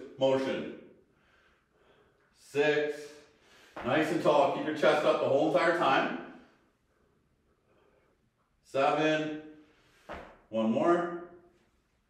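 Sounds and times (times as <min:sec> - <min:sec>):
man's voice: 0:00.0 - 0:00.8, 0:02.4 - 0:06.3, 0:10.5 - 0:11.3.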